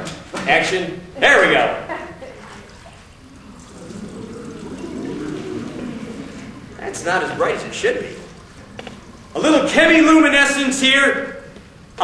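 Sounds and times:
liquid pouring and trickling: 2.4s - 10.8s.

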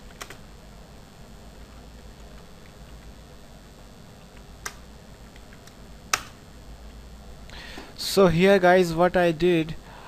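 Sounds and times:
keyboard typing: 0.0s - 0.4s.

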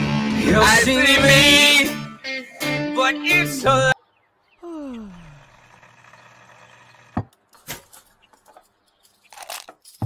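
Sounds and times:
music: 0.0s - 4.0s.

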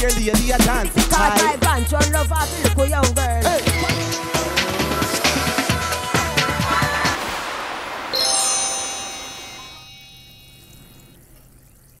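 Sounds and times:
chiming bell-like logo sting: 8.2s - 11.2s.

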